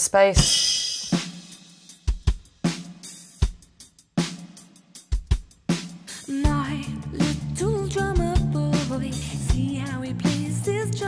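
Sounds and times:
drum kit playing: 0.2s - 10.8s.

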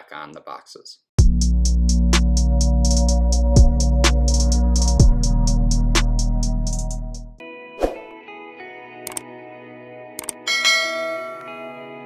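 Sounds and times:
background music: 1.2s - 12.0s
mouse clicks: 10.2s - 10.4s.

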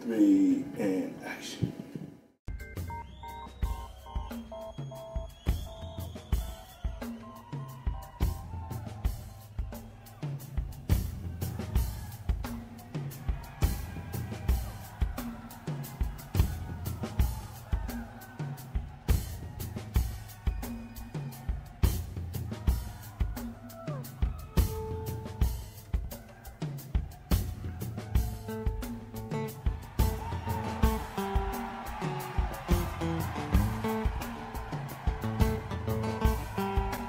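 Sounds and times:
drum kit beat: 2.5s - 37.0s.

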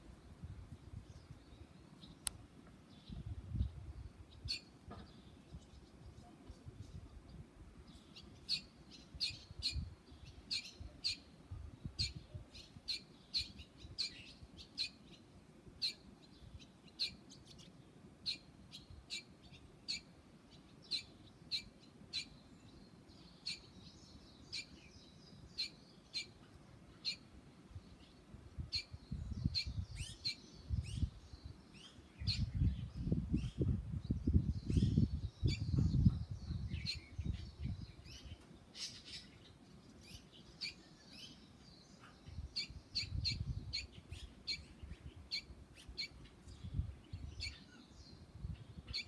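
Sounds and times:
bird chick chirping: 34.3s - 47.9s.

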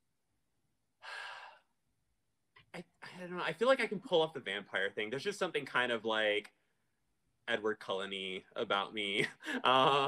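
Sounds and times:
man sighing: 9.4s - 10.0s.

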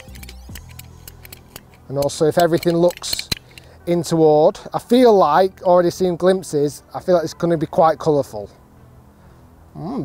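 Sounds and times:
golf ball cutter clicking: 0.0s - 3.7s
quiet background music: 0.0s - 10.0s.

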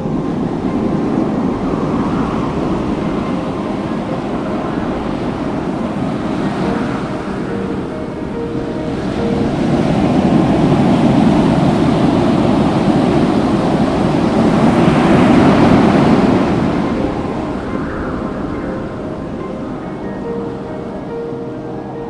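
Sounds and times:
faint music: 0.0s - 22.0s
ocean surf washing onto beach: 0.0s - 22.0s.

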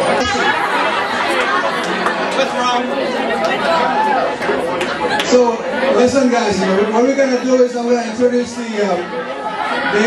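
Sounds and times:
guests chattering: 0.0s - 10.0s.

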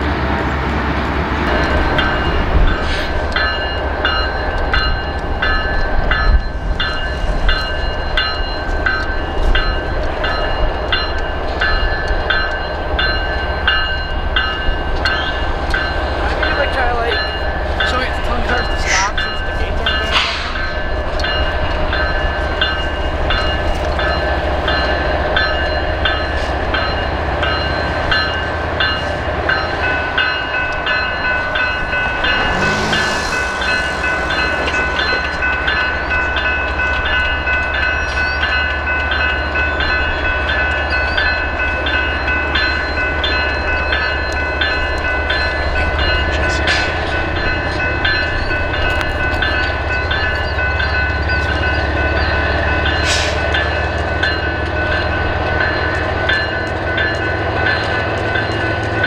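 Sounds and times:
diesel locomotives rumbling: 0.0s - 59.0s
bell ringing: 1.5s - 59.0s.

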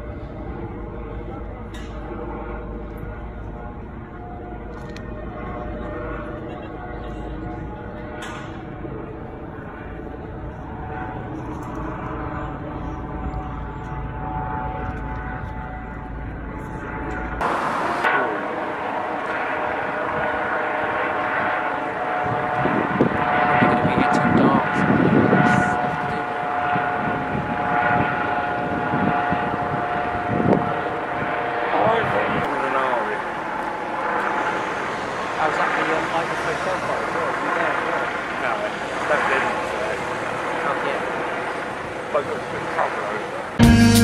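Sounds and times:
steady engine drone: 0.0s - 44.0s.

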